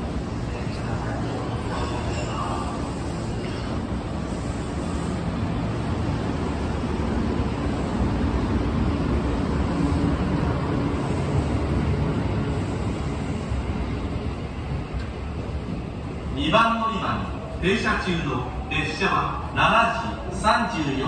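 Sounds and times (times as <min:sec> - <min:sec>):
electric train rumbling: 0:00.0 - 0:21.0.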